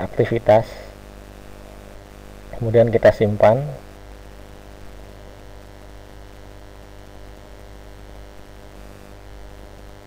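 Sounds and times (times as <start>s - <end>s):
faint hiss: 0.0s - 10.0s
low electrical hum: 0.0s - 10.0s.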